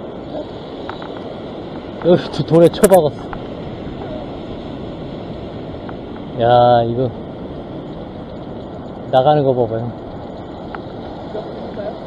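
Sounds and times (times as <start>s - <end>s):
surf washing over rocks: 0.0s - 12.0s.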